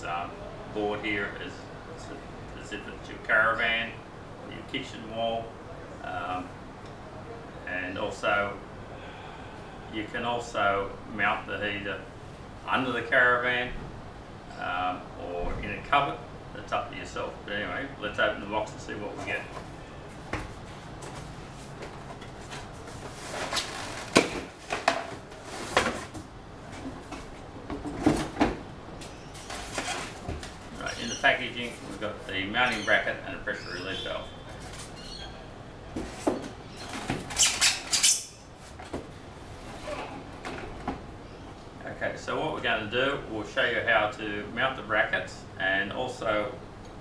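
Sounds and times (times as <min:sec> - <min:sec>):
cardboard scraping and rustling: 0:20.5 - 0:28.6, 0:29.3 - 0:32.2.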